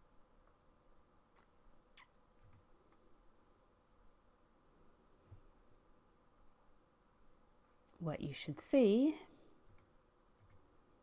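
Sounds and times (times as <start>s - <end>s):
computer mouse clicks: 1.4s - 2.7s, 9.6s - 10.6s.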